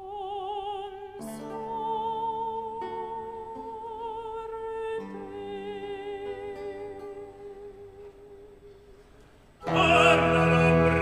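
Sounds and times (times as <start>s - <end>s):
person singing with instruments: 0.0s - 11.0s.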